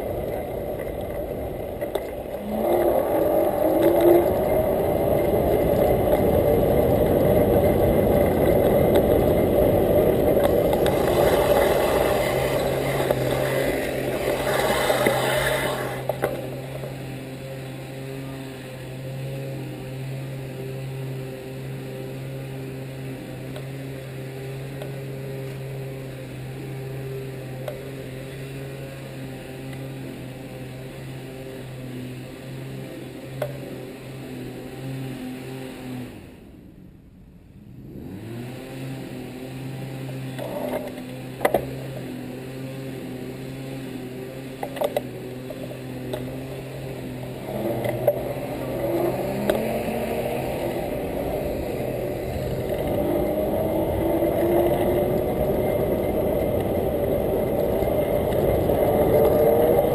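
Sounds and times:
electric motor whine: 0:00.0 - 0:36.8, 0:37.8 - 0:59.9
steady low hum: 0:00.0 - 0:59.9
wind and tyre noise: 0:00.0 - 0:59.9.

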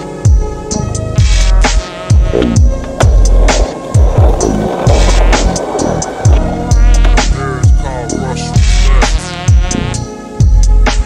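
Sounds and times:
skateboard wheels rolling on pavement: 0:01.2 - 0:07.7
hip-hop beat: 0:01.2 - 0:10.0.

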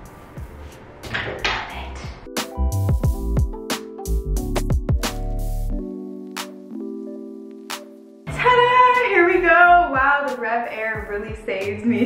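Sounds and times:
sustained keyboard chords: 0:00.0 - 0:10.1
background music with steady beat: 0:00.0 - 0:12.0.

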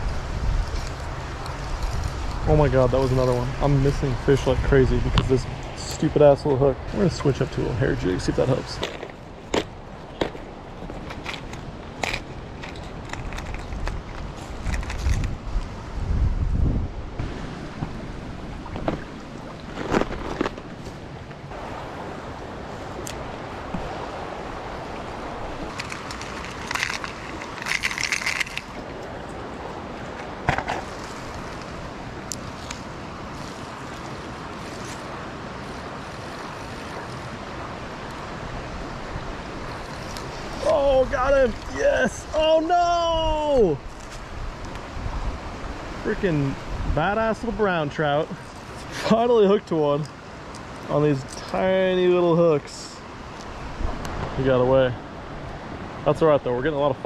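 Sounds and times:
wind rumbling on microphone: 0:00.0 - 0:49.1, 0:52.6 - 0:57.0
creek water rushing: 0:00.0 - 0:57.0
plastic tackle box rattling: 0:25.7 - 0:28.8.

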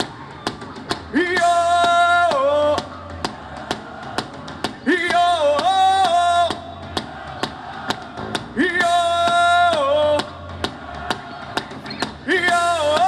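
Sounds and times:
steady drum beat: 0:00.0 - 0:13.0.

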